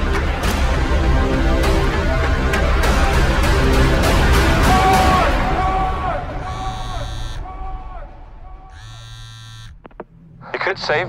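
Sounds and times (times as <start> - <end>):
harsh buzzing electronic tone: 6.4 - 7.4, 8.7 - 10.0.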